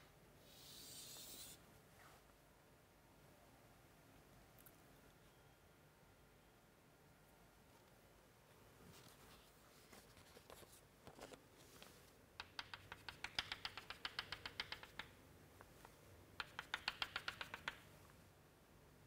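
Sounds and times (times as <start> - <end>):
faint chalk strokes: 0.4 - 2.3
chalk tapping on chalkboard: 12.4 - 15.2, 16.4 - 17.8.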